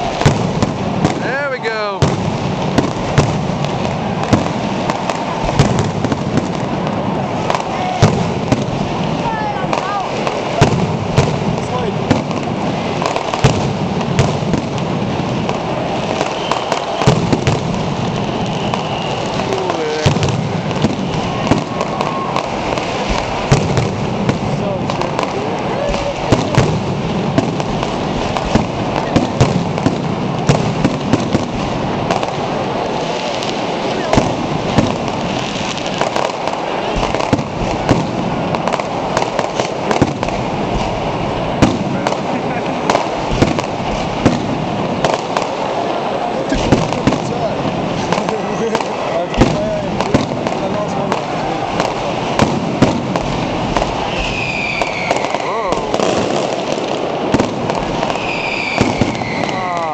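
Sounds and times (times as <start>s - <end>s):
firecrackers crackling: 0.0s - 59.9s
firework bangs: 0.0s - 59.9s
whistling fireworks: 0.0s - 59.9s.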